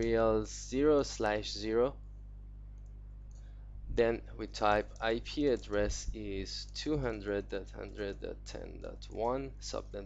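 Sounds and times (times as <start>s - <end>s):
low electrical hum: 0.0s - 10.0s
faint ticks: 2.7s - 3.6s.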